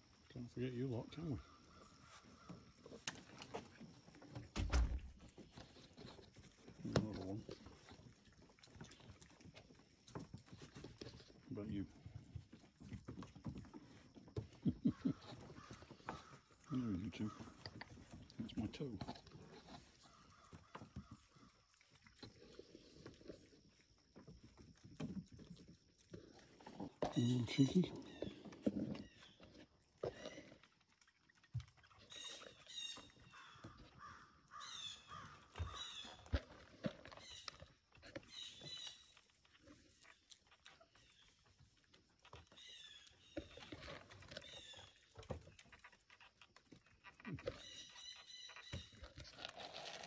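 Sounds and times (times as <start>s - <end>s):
animal paws tapping on wooden boards: 12.2s - 16.6s, 32.7s - 37.4s
harsh bird calls: 32.1s - 36.2s.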